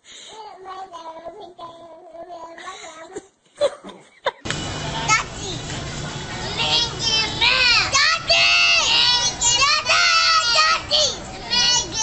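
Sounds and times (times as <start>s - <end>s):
steady background hum: 4.4s - 12.0s.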